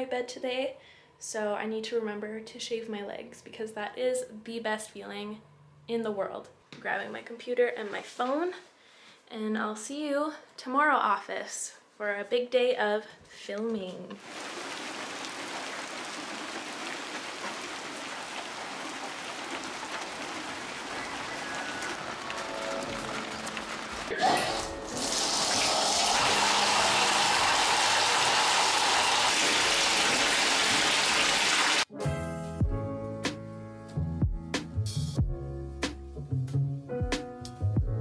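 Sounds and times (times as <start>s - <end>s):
rain on a stone path: 14.2s - 24.1s
faucet running into bathtub: 24.6s - 31.8s
music with a beat: 32.0s - 38.0s.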